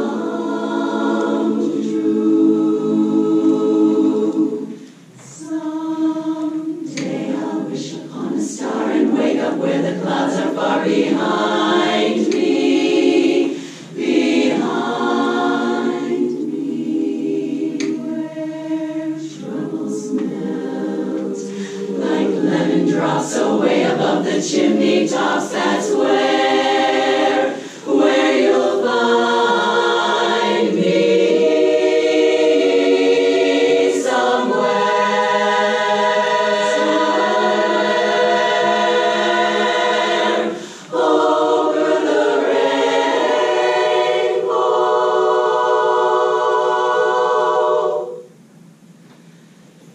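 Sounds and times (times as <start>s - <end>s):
women's chorus singing in harmony: 0.0s - 49.4s
singers' short breaths: 13.5s - 14.0s, 21.5s - 21.9s, 27.5s - 27.9s, 40.6s - 40.9s.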